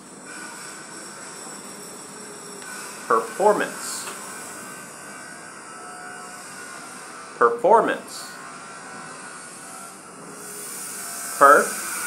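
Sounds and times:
faint hum: 0.0s - 12.0s
even hiss: 10.4s - 12.0s.

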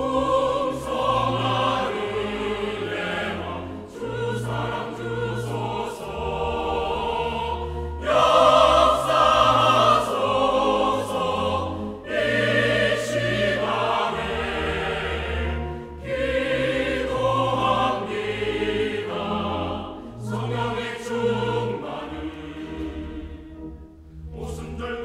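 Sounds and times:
choir singing in harmony: 0.0s - 25.0s.

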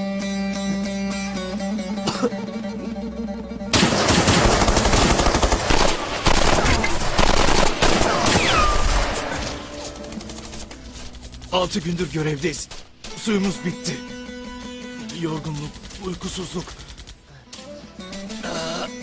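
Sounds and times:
dramatic music: 0.0s - 19.0s
automatic weapon fire: 3.8s - 10.7s.

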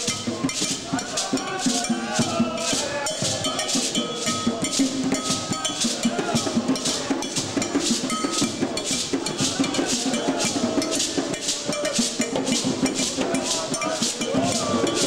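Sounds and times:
djembe drums: 0.0s - 15.0s
high bright percussion: 0.0s - 15.0s.

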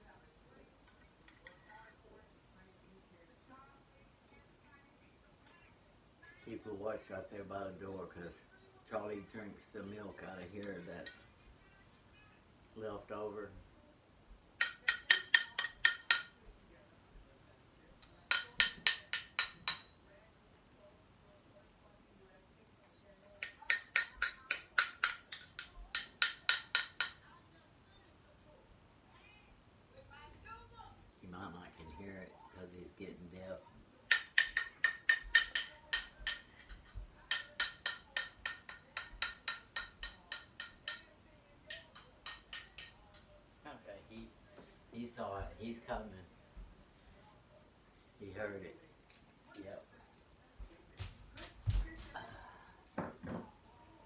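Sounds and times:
spoon clinking on stoneware bowl: 14.6s - 16.4s, 18.3s - 20.0s, 23.4s - 27.2s, 34.1s - 41.1s, 41.7s - 43.3s.

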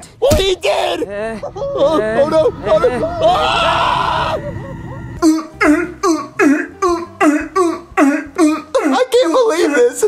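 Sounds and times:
person crying out: 0.7s - 9.1s.

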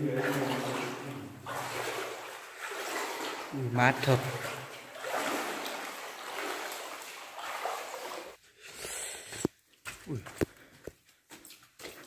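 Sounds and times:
footsteps splashing in shallow water: 0.0s - 8.4s, 9.4s - 12.0s.

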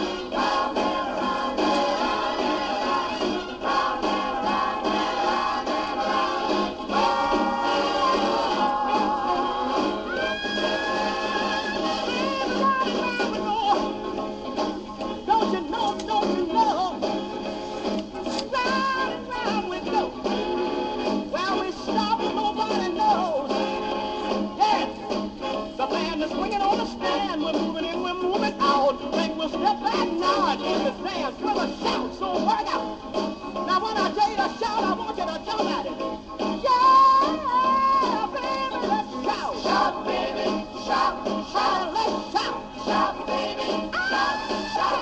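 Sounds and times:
rhythm and blues record: 0.0s - 45.0s.

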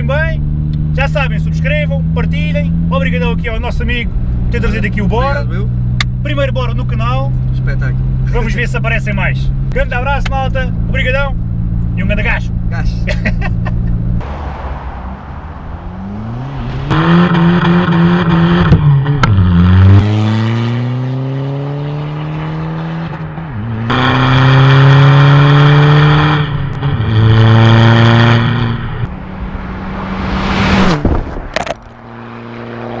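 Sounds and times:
diesel engine accelerating with upshifts: 0.0s - 33.0s.

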